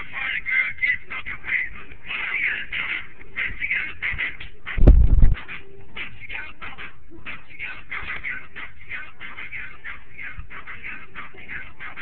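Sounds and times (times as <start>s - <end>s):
loud low thud with rumble: 4.8s - 5.4s.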